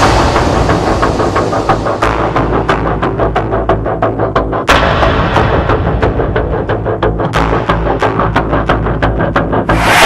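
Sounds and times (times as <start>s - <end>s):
dramatic music with deep bass: 0.0s - 10.0s.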